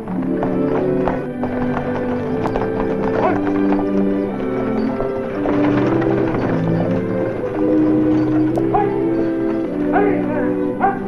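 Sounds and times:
dramatic background music: 0:00.0 - 0:11.0
galloping horse hoofbeats: 0:00.0 - 0:11.0.

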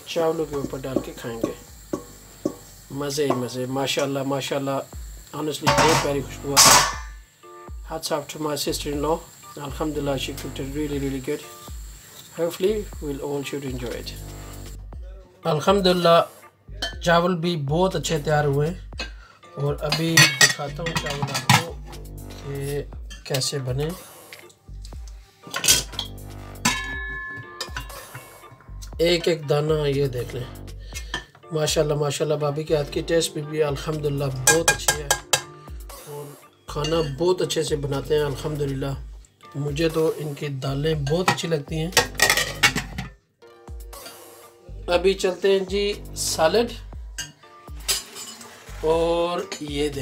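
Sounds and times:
metal spoon knocking on pot: 0:00.6 - 0:02.7, 0:05.7 - 0:07.2, 0:19.9 - 0:21.7, 0:26.6 - 0:28.2, 0:34.5 - 0:35.5, 0:42.0 - 0:43.2
pot ringing: 0:00.6 - 0:03.6, 0:05.6 - 0:07.2, 0:19.9 - 0:21.7, 0:25.6 - 0:28.6, 0:34.4 - 0:35.5
ringing kitchenware clink: 0:26.7 - 0:28.2.

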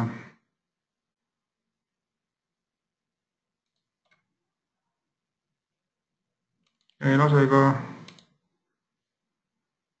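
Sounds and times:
computer mouse clicks: 0:03.6 - 0:04.3, 0:06.6 - 0:07.0, 0:08.0 - 0:08.4.

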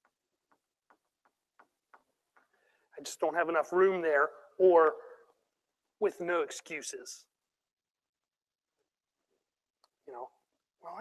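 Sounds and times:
marker ticking on whiteboard: 0:00.0 - 0:02.6.

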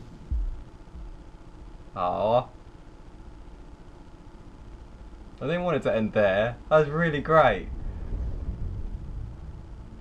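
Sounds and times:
low rumbling noise: 0:00.0 - 0:01.9, 0:06.8 - 0:10.0.

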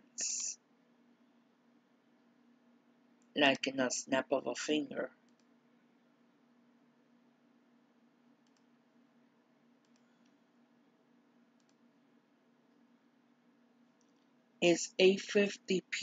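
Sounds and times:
low steady hum: 0:00.0 - 0:16.0
faint computer mouse clicks: 0:05.3 - 0:05.5, 0:08.4 - 0:08.7, 0:09.8 - 0:10.4, 0:11.6 - 0:11.8.

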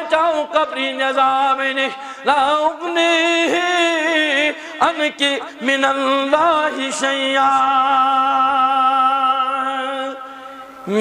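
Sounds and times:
man preaching in sing-song chant: 0:00.0 - 0:11.0.

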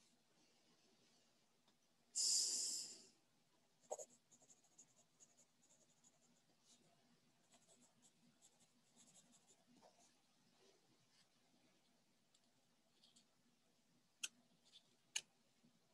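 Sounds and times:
pen scratching on paper: 0:03.9 - 0:06.3, 0:07.4 - 0:09.6.

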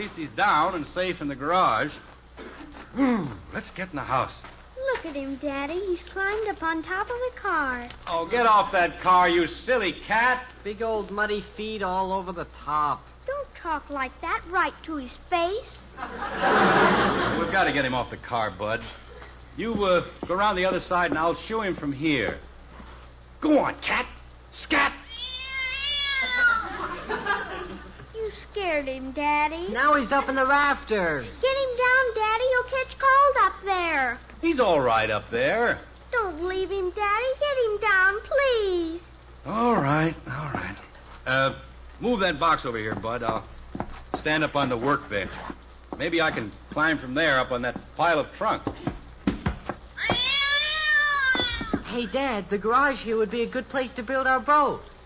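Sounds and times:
cat yowling: 0:25.0 - 0:26.8, 0:50.0 - 0:51.9.

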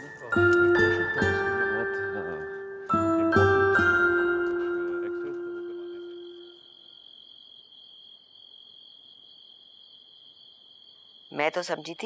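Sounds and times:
mallet percussion notes: 0:00.0 - 0:06.5
cricket trill: 0:03.8 - 0:12.0.

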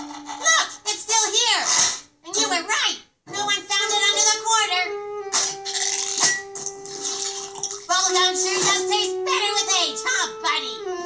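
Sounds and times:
held note in background music: 0:03.3 - 0:11.0.

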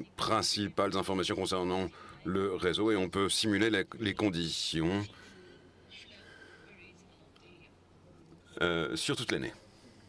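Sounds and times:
faint distant speech: 0:01.6 - 0:10.0.

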